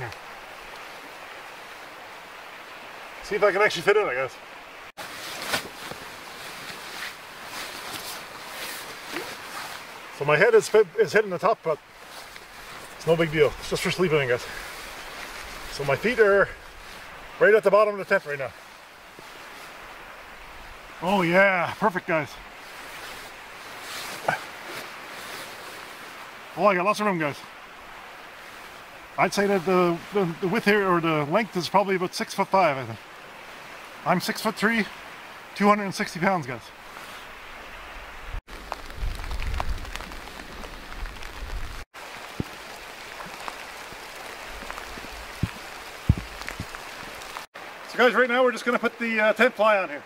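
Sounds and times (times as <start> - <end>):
light rain hissing: 0.0 - 50.0
outdoor background rush: 0.0 - 50.0
wind rumble on microphone: 37.9 - 42.5, 44.4 - 47.4
raindrop ticks: 38.5 - 47.5.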